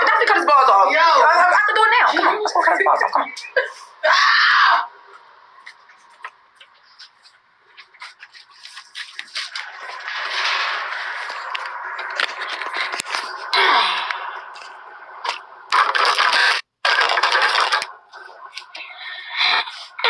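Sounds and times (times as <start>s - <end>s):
rustling and scraping handling noise: 5.7s - 13.5s.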